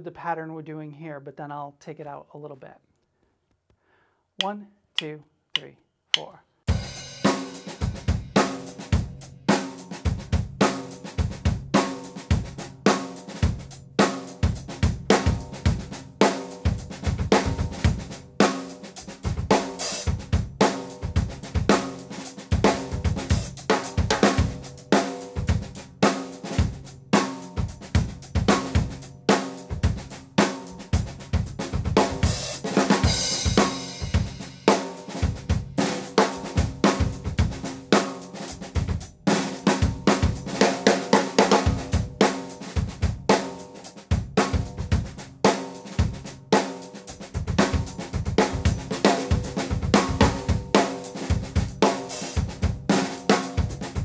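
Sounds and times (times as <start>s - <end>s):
drum kit groove: 4.4s - 54.0s.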